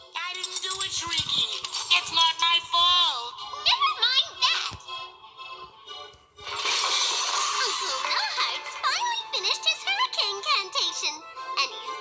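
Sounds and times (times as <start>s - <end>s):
cartoon music: 0.2s - 5.6s, 6.4s - 12.0s.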